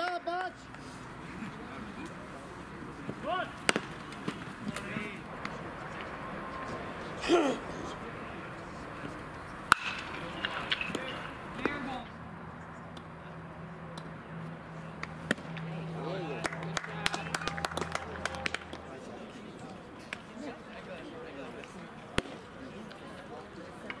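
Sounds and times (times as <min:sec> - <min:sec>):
voices of players and spectators: 0:00.0 - 0:24.0
baseball bat crack: 0:03.0 - 0:07.7, 0:09.6 - 0:11.9, 0:14.9 - 0:15.7, 0:16.3 - 0:19.0, 0:21.6 - 0:23.0.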